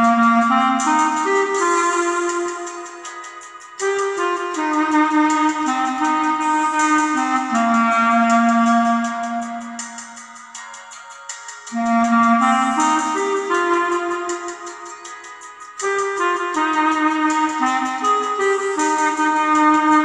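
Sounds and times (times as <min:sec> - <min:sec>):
clarinet playing slow melody: 0:00.0 - 0:10.6, 0:11.7 - 0:20.0
accompaniment with steady beat: 0:00.0 - 0:20.0.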